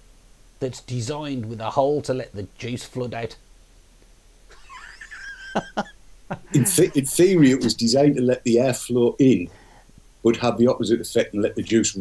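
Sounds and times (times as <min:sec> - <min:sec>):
man's stifled wheezy laugh: 0:04.5 - 0:07.1.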